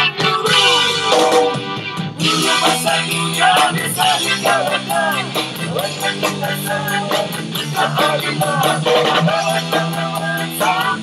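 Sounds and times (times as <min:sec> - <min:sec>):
man singing: 0:00.0 - 0:01.5, 0:02.2 - 0:11.0
instrumental backing: 0:00.0 - 0:11.0.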